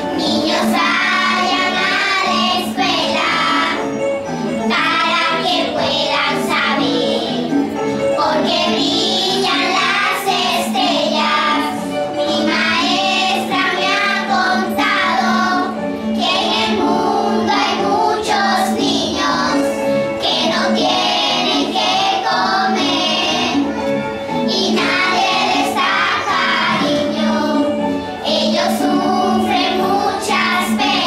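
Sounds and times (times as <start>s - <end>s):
children's choir singing: 0.0s - 31.0s.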